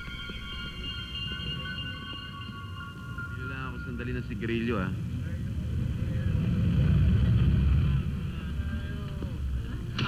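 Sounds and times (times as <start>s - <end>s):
vehicle engine rumble: 2.9s - 10.0s.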